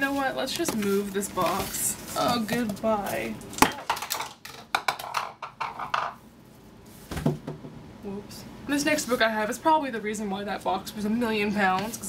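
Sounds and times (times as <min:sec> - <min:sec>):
cardboard scraping rustles: 0:00.0 - 0:02.7.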